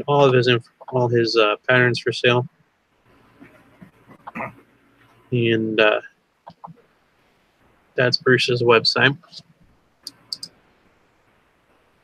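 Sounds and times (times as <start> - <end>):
person speaking: 0.0 - 2.5, 3.3 - 6.8, 8.0 - 9.5, 10.1 - 10.5
computer mouse clicks: 6.5 - 6.8, 10.0 - 10.5.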